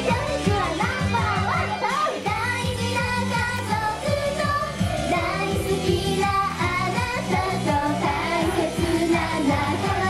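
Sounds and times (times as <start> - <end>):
amplified pop backing track: 0.0 - 10.0
young female voices singing: 0.0 - 10.0.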